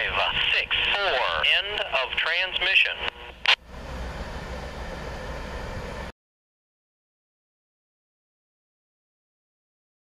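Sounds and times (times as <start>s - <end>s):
radio squelch: 0.0s - 3.6s
freight train rumbling: 3.6s - 6.1s.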